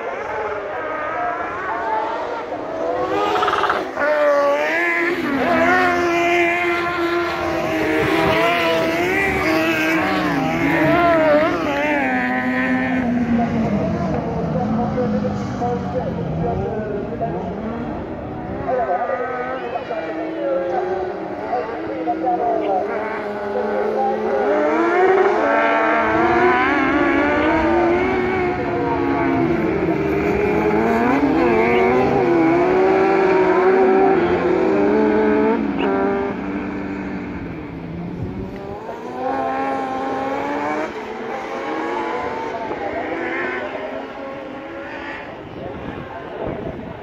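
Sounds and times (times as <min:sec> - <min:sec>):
buggies racing with revving engines: 0:00.0 - 0:47.0.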